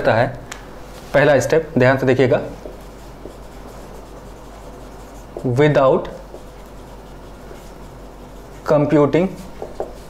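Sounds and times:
marker writing on whiteboard: 2.5s - 10.0s.

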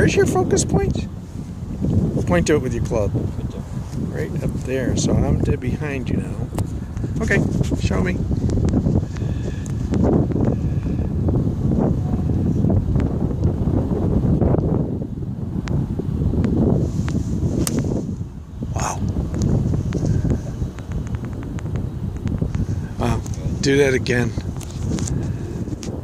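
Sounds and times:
wind buffeting microphone: 0.0s - 26.0s.

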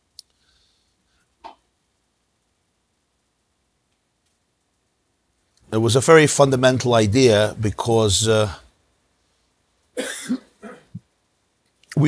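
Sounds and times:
person coughing: 10.0s - 11.0s.

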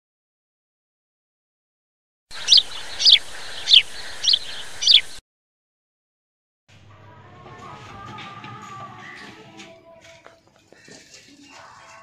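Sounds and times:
bird chirping: 2.3s - 5.2s
background hiss: 2.4s - 5.2s.

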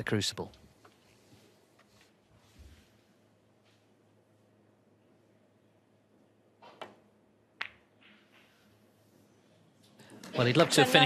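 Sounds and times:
snooker balls clicking: 6.6s - 8.6s
cue tip striking ball: 7.6s - 8.6s.

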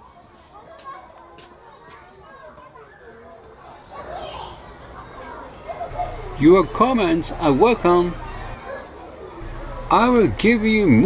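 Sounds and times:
children's voices: 0.0s - 11.0s
faint background chatter: 0.0s - 11.0s.

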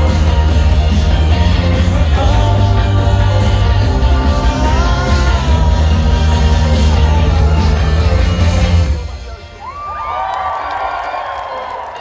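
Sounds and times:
loud band music: 0.0s - 10.0s
crowd cheering and screaming: 6.6s - 12.0s.

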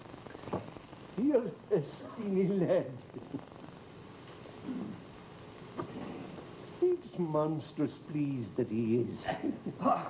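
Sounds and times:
soundtrack hiss: 0.0s - 10.0s
man chuckling: 9.2s - 10.0s.

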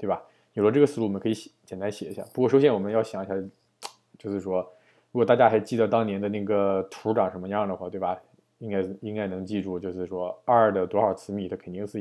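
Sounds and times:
man speaking: 0.0s - 12.0s.

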